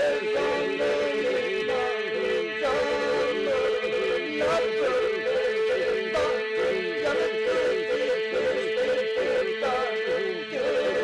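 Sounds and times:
ornamented folk singing: 0:00.0 - 0:11.0
steady held drone: 0:00.0 - 0:11.0.

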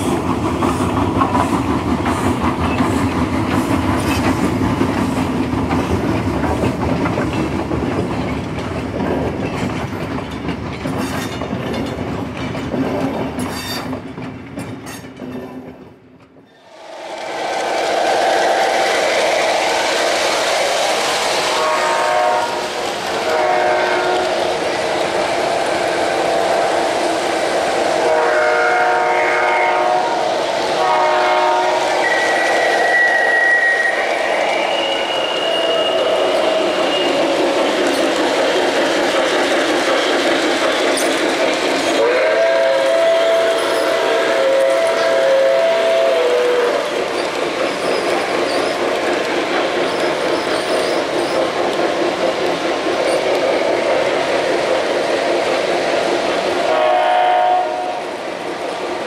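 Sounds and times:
model train horn blasts: 0:21.6 - 0:24.4, 0:28.0 - 0:34.0, 0:42.0 - 0:46.9, 0:56.6 - 0:58.1
model train wheels running: 0:34.0 - 0:59.0.

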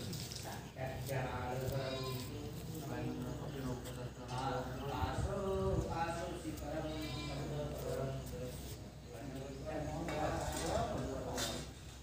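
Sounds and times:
man chanting: 0:00.0 - 0:11.6.

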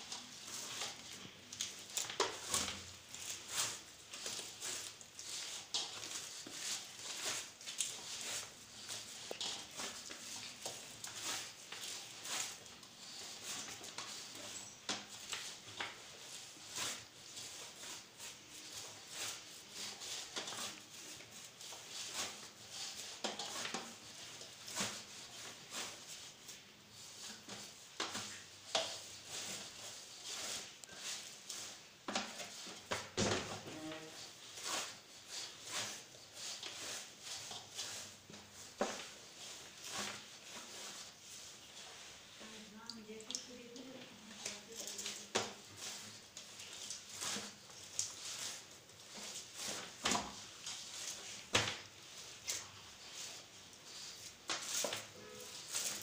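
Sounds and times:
dough kneaded by hand: 0:00.0 - 0:56.0.

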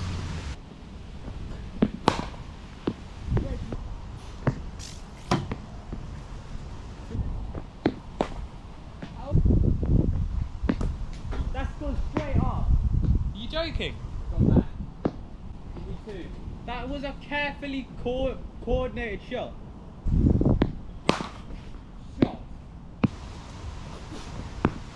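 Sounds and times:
cricket bat hitting ball: 0:01.8 - 0:03.0, 0:20.6 - 0:21.5
wind rumble on microphone: 0:02.4 - 0:04.8, 0:05.6 - 0:16.7, 0:20.0 - 0:21.1.

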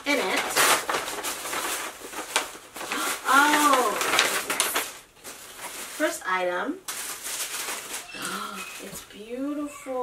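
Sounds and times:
paper packaging rustling: 0:00.0 - 0:09.4.

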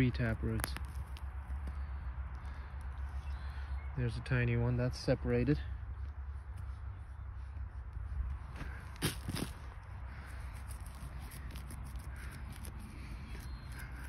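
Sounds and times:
hands digging in soil: 0:00.0 - 0:01.7, 0:07.8 - 0:14.0
falling soil ticks: 0:00.4 - 0:01.3.

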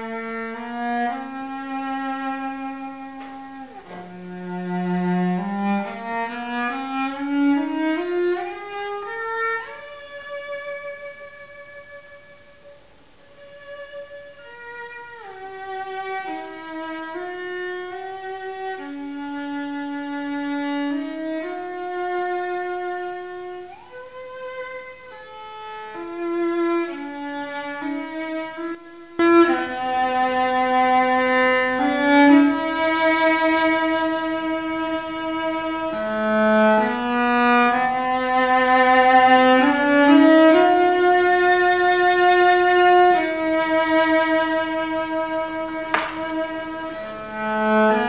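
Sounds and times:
solo cello bowed melody: 0:00.0 - 0:48.0.

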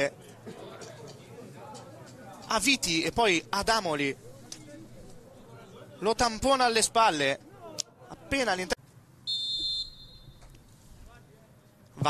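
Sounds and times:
faint distant voices calling: 0:00.0 - 0:12.0
referee's whistle: 0:09.3 - 0:10.4.

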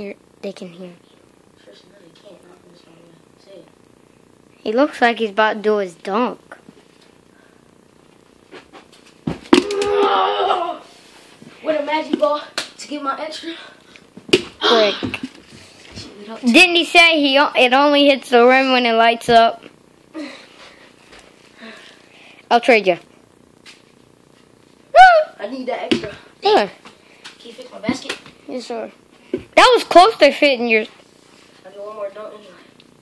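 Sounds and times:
child's voice: 0:00.0 - 0:01.0, 0:11.6 - 0:13.7, 0:14.6 - 0:15.2, 0:25.1 - 0:26.8, 0:29.6 - 0:30.9
loud wavering yell: 0:09.6 - 0:10.9, 0:24.9 - 0:25.4.

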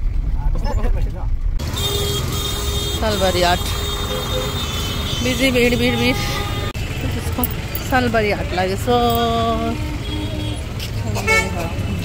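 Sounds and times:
engines rumbling: 0:00.0 - 0:12.0
vehicle horn toots: 0:01.7 - 0:06.8, 0:11.2 - 0:11.6.

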